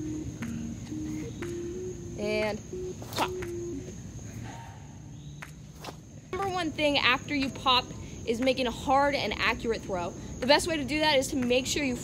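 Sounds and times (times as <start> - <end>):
soft melody of low notes: 0.0 - 4.2
high-pitched insect drone: 0.0 - 5.4.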